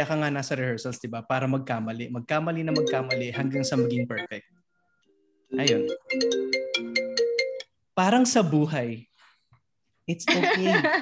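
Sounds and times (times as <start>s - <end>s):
phone ringtone chiming melody: 2.7s - 7.8s.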